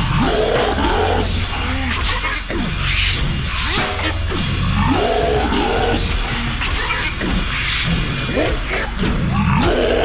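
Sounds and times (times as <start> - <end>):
heavy rock backing music: 0.0 - 10.0.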